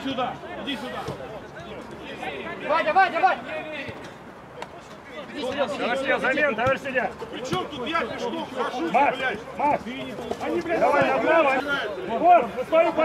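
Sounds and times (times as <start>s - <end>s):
chatter: 0.0s - 13.0s.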